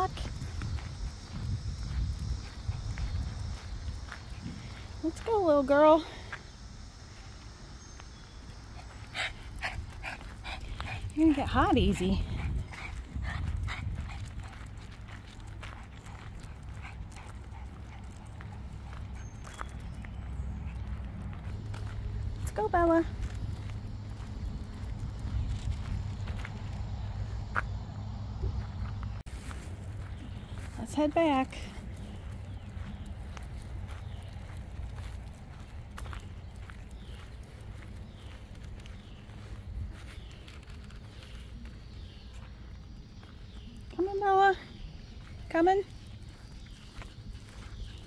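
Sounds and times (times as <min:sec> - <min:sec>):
steady low rumble: 0:00.0 - 0:05.1, 0:06.2 - 0:44.0
footsteps crunching on gravel: 0:00.0 - 0:09.0, 0:09.6 - 0:48.0.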